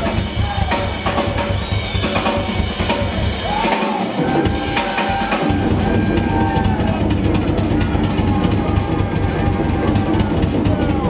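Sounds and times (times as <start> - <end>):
drum solo: 0.0 - 11.0.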